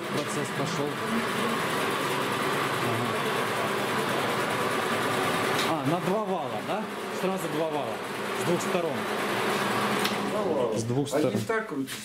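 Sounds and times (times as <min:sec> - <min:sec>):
uncapping machine whirring hum: 0:00.0 - 0:10.8.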